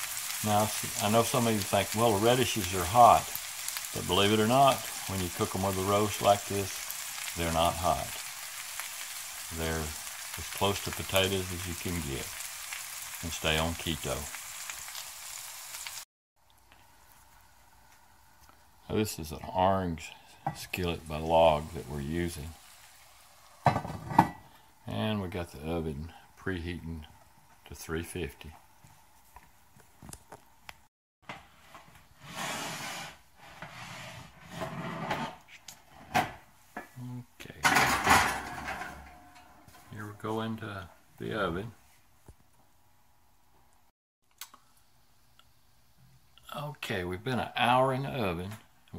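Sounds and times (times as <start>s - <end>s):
meat and vegetables sizzling: 0.0s - 16.1s, 20.3s - 25.0s
faint hiss: 0.0s - 23.7s
metal scraping on oven rack: 31.7s - 36.1s, 37.6s - 39.7s.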